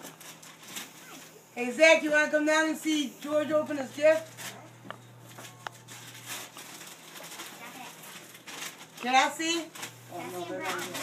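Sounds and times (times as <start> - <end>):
wrapping paper rustling and crinkling: 0.0 - 1.4, 3.8 - 11.0.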